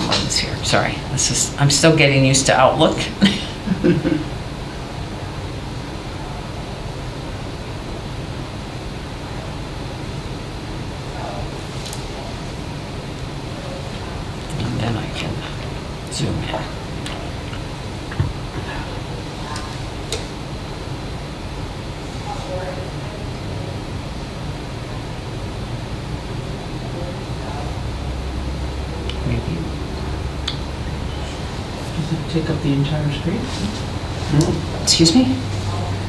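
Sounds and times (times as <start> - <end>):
room tone hum and hiss: 0.0 - 36.0.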